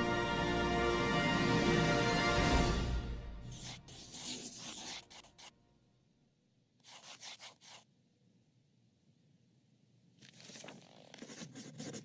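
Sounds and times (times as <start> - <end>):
pencil scratching on paper: 3.5 - 5.6, 6.8 - 7.9, 10.3 - 12.0.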